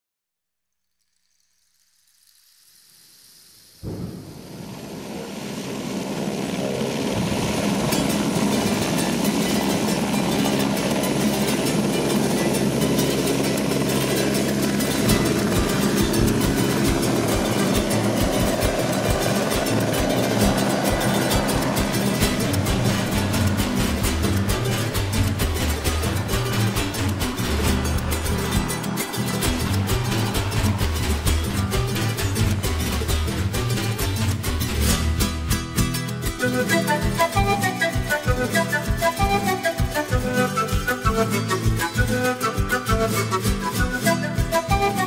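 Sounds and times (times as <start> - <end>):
helicopter rotor and engine: 4.2 - 45.0.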